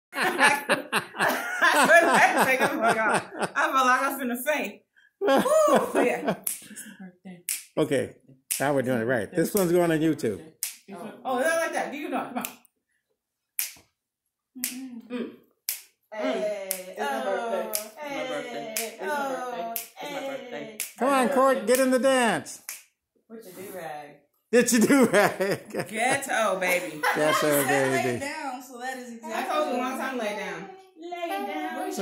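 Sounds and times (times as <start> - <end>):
sharp hand-struck cracks: 13.6 - 13.8.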